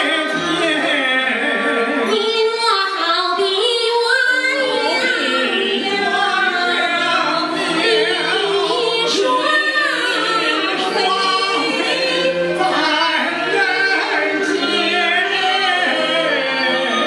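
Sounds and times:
musical accompaniment: 0.0s - 17.0s
woman and man singing opera duet: 0.0s - 17.0s.

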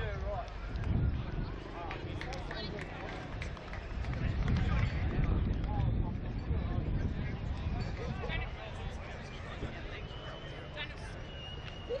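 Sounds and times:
spectators chattering: 0.0s - 12.0s
wind rumble on microphone: 0.0s - 12.0s.

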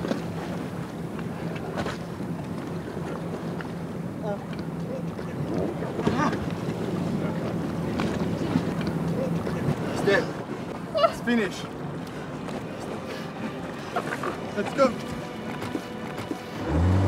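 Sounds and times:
boat engine idling: 0.0s - 17.0s
water noise: 0.0s - 17.0s
wind: 0.0s - 17.0s.

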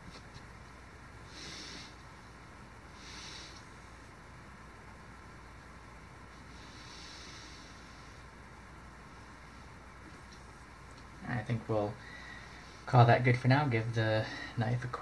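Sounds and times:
faint room hiss: 0.0s - 15.0s
soft hissing breaths: 0.0s - 15.0s.

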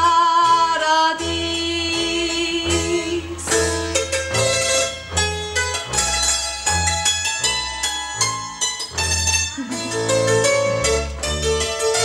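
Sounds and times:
double bass low notes: 0.0s - 12.0s.

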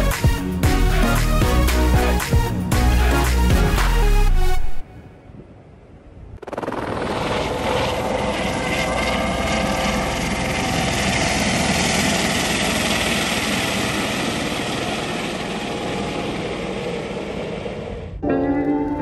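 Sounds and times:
helicopter flying low past: 5.7s - 18.3s.

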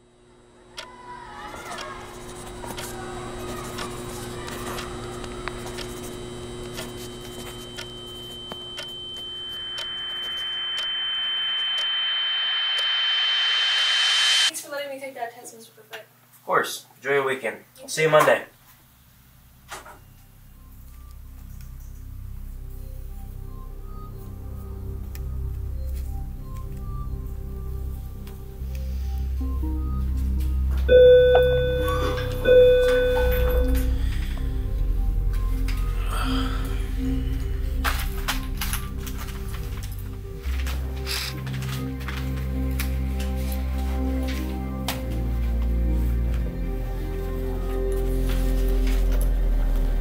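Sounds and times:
high ringing tone: 1.7s - 14.5s, 30.9s - 40.5s
struck bell-like notes: 5.9s - 14.5s, 30.9s - 40.6s
rushing swell riser: 9.6s - 14.5s.

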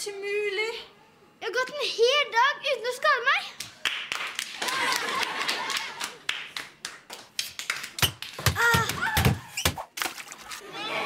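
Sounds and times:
children clapping: 3.6s - 9.2s.

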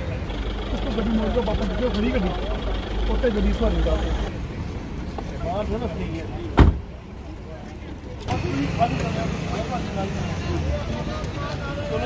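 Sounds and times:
people talking: 0.0s - 4.4s, 5.2s - 12.0s
vehicle engine hum: 0.0s - 6.4s, 7.0s - 12.0s.

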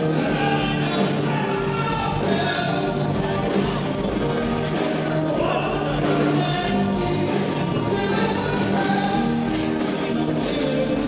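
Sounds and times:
live band playing: 0.0s - 11.0s
people singing: 0.0s - 11.0s.

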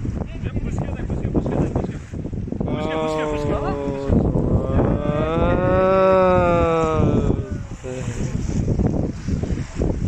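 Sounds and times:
long low-pitched calls: 2.9s - 7.4s.

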